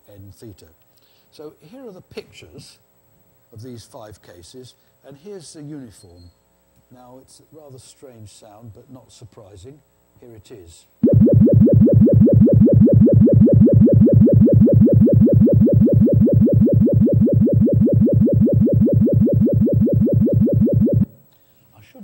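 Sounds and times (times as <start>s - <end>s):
pulsing synthetic tone: 11.0s - 21.2s.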